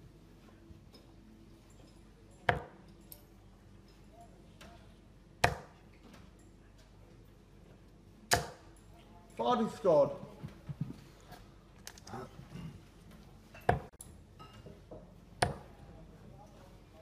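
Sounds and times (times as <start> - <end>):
darts thudding into dartboard: 2.4 - 2.8.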